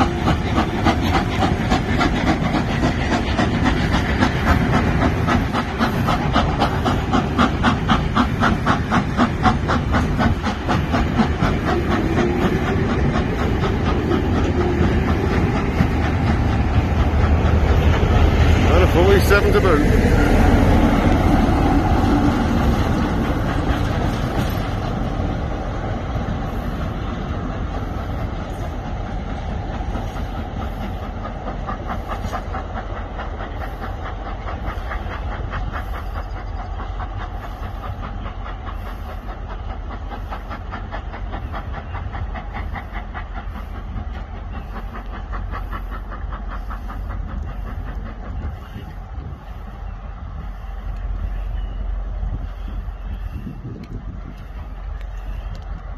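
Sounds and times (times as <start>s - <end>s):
passenger train pulling away: 0.0s - 55.9s
train wheels clicking on rails: 0.0s - 55.9s.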